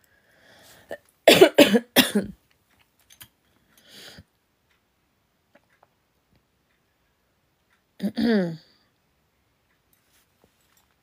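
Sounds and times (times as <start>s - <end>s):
woman coughing: 1.3s - 2.4s, 8.0s - 8.7s.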